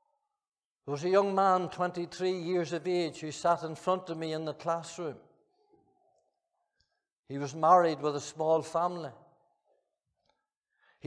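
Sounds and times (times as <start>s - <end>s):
man's voice in reverberant hall: 0.8s - 5.8s, 7.3s - 10.0s.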